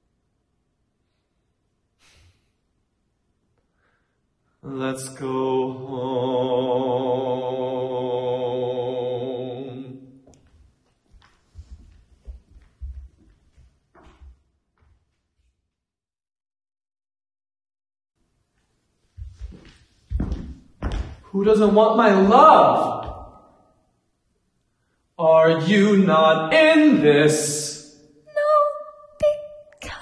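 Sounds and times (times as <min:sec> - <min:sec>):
person singing a long note: 0:04.6 - 0:10.2
footsteps on wooden stage: 0:10.3 - 0:15.6, 0:18.6 - 0:23.4.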